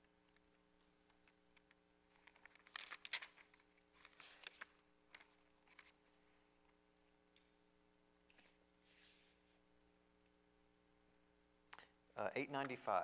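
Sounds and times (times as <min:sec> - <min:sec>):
faint steady hum: 0:00.0 - 0:13.0
paper pages rustling: 0:02.1 - 0:06.1.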